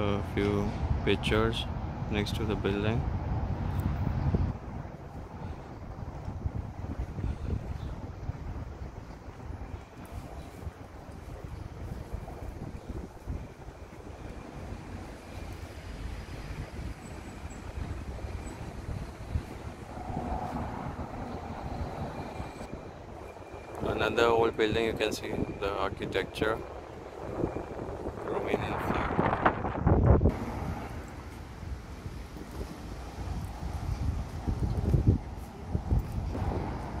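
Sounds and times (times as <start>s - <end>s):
low uneven street rumble: 0.0s - 29.7s.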